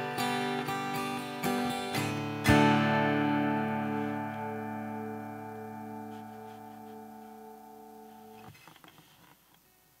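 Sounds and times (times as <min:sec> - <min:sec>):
strummed acoustic guitar chord: 0:00.0 - 0:08.5.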